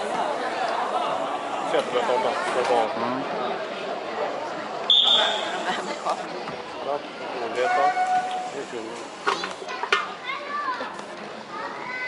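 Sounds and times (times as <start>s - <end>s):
crowd murmur: 0.0s - 12.0s
spectators calling and shouting: 0.0s - 12.0s.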